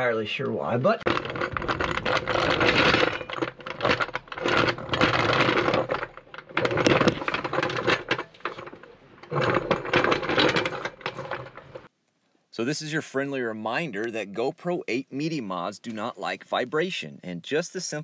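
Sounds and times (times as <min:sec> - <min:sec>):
hydraulic jack rattling clicks: 0:01.1 - 0:11.9.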